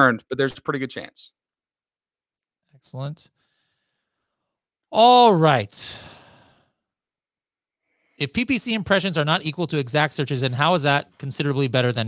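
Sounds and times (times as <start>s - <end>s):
man exhaling: 5.8s - 6.7s.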